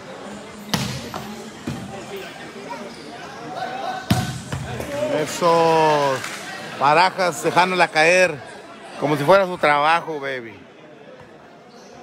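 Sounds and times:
volleyball slaps: 0:00.7 - 0:01.9, 0:04.1 - 0:05.0.

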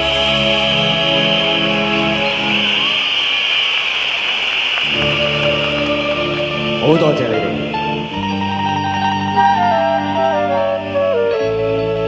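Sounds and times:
audience noise: 0:04.8 - 0:08.5
concert band chords: 0:04.9 - 0:12.0.

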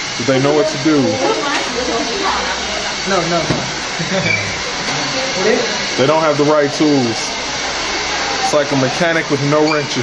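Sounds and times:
steady shop noise hiss: 0:00.0 - 0:10.0
indistinct voices: 0:00.2 - 0:10.0.

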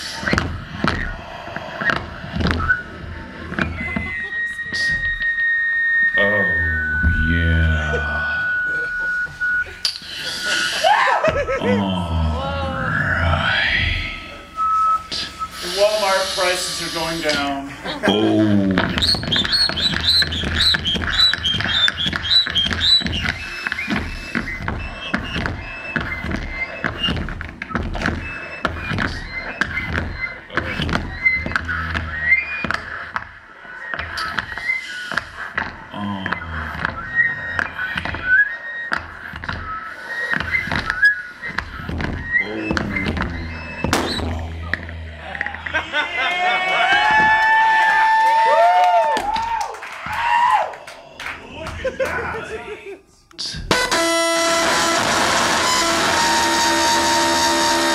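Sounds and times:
high whistle-like tone: 0:01.8 - 0:10.9, 0:12.8 - 0:18.2, 0:18.9 - 0:46.0
gliding overlapping pitches: 0:16.4 - 0:47.4
high chirping squeals: 0:18.9 - 0:27.2, 0:28.2 - 0:35.4, 0:36.4 - 0:46.0
steady low hum: 0:23.1 - 0:47.5.

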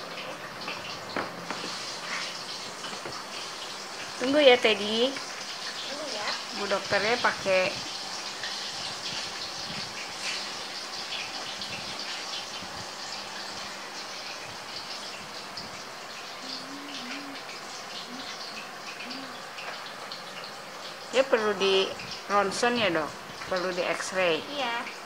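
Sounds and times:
background hiss: 0:01.4 - 0:24.9
faint murmuring voice: 0:16.4 - 0:18.4, 0:19.0 - 0:19.4.

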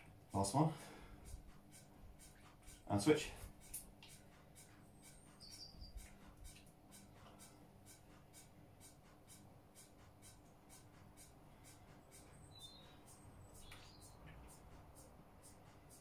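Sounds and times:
faint even ticking: 0:00.0 - 0:16.0.

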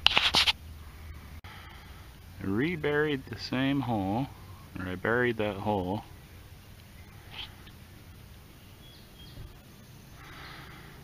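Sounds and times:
quiet outdoor ambience: 0:00.0 - 0:11.0
faint bird calls: 0:04.3 - 0:04.8, 0:06.1 - 0:11.0.

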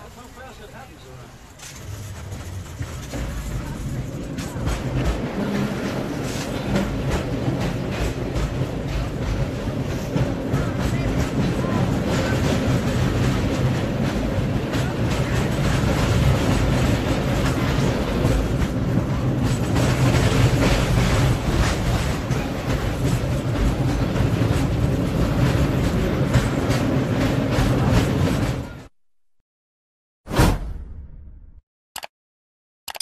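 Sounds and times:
people's voices: 0:00.0 - 0:24.7
cable car rumbling and rattling: 0:00.0 - 0:28.9.

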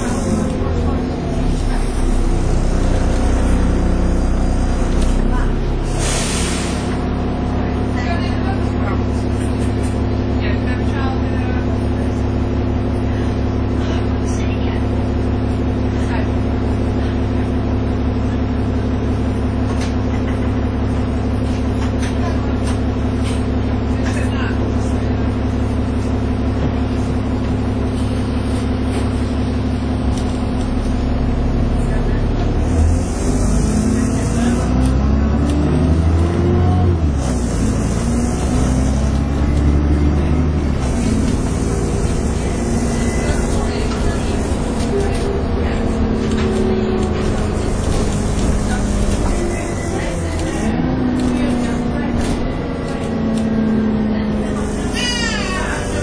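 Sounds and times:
bus diesel engine: 0:00.0 - 0:56.0.

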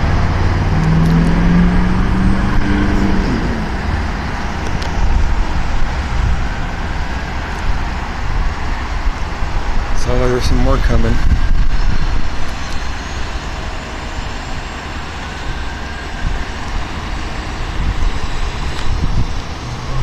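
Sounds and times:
engine droning: 0:00.0 - 0:20.0
road traffic rumble: 0:00.0 - 0:20.0.

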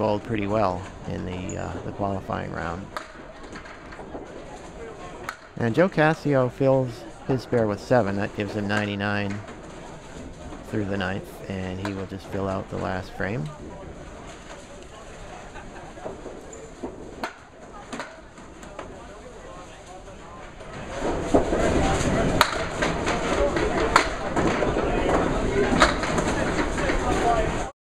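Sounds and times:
bowling balls clacking pins: 0:00.0 - 0:14.7, 0:20.6 - 0:27.6
voices: 0:00.0 - 0:16.8, 0:17.6 - 0:27.7
din of bowling lanes: 0:00.0 - 0:27.7.

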